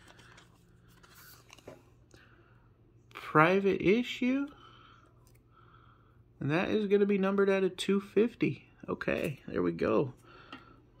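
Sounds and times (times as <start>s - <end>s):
plastic sleeve rustling: 0.0s - 2.0s.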